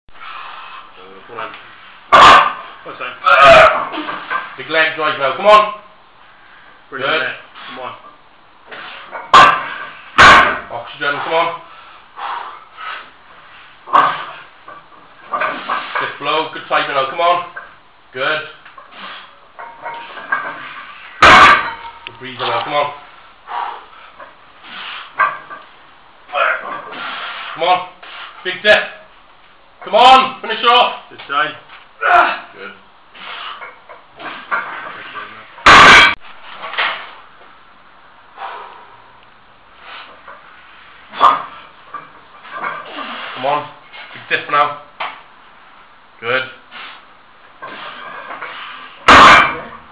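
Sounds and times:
steel log crashing down: 9.4 - 10.8, 21.2 - 21.9, 35.6 - 36.2, 49.0 - 49.9
man breathing forcefully: 11.7 - 13.2, 23.4 - 25.2
man grunting: 32.0 - 32.6.

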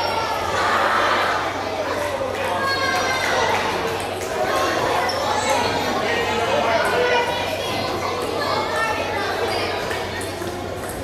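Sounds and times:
children chattering in a hall: 0.0 - 11.0.

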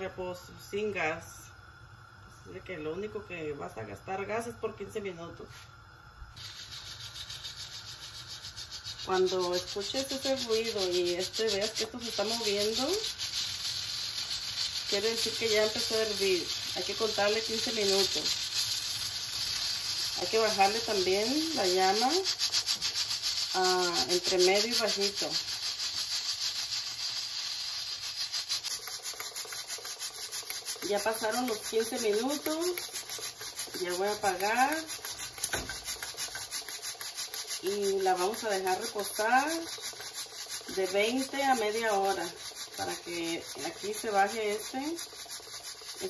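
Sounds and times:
pressure cooker valve hissing: 6.3 - 46.0.

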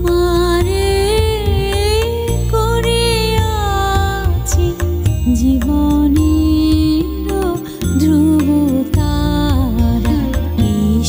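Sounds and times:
steady bass accompaniment: 0.0 - 11.0
woman singing: 0.0 - 11.0.

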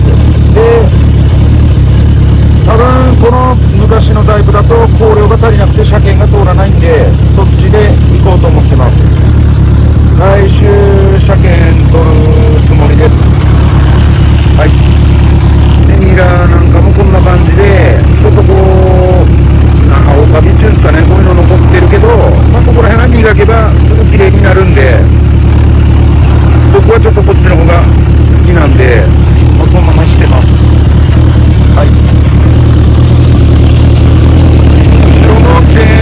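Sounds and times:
motorcycle engine idling: 0.0 - 36.0.

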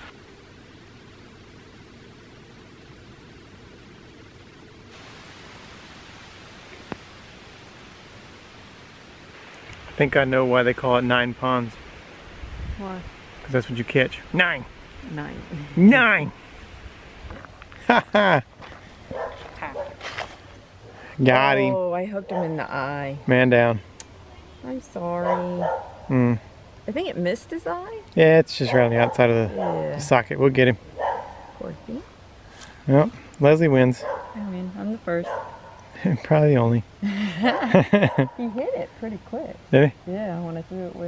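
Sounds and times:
outdoor background hiss: 0.0 - 41.0.

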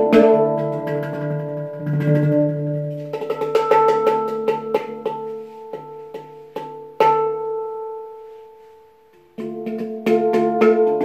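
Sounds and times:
handpan playing: 0.0 - 11.0.

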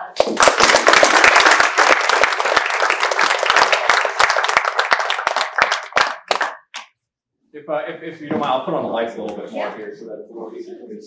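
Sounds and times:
audience applauding: 0.1 - 6.9.

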